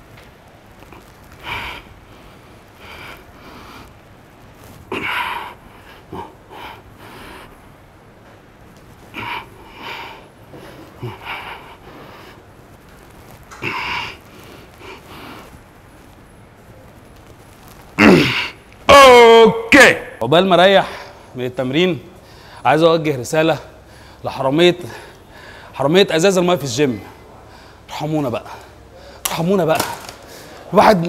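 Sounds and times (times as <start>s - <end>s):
man breathing hard: 9.1s - 12.5s, 22.2s - 22.6s, 23.8s - 24.2s, 24.9s - 25.8s.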